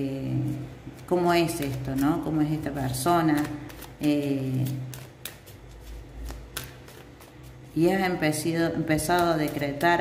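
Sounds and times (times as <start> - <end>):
cards being shuffled: 0.9 - 2.6, 3.2 - 7.8.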